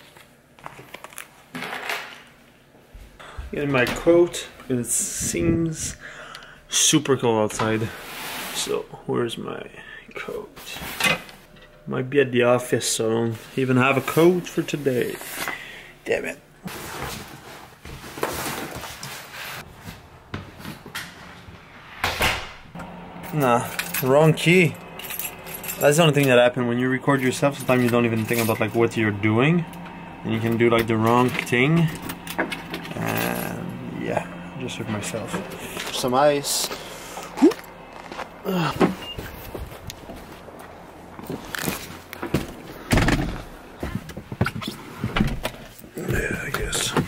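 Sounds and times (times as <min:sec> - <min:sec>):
footsteps crunching on snow: 0:39.2 - 0:42.8.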